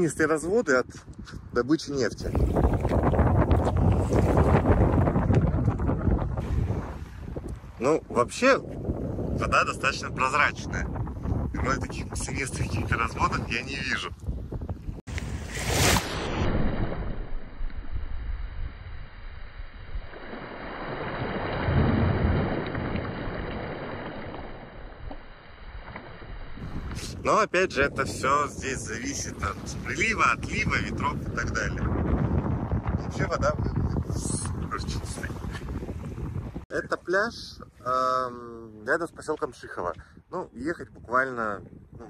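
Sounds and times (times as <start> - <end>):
wind buffeting microphone: 0.0 - 42.0
waves washing on sandy shore: 6.4 - 7.9.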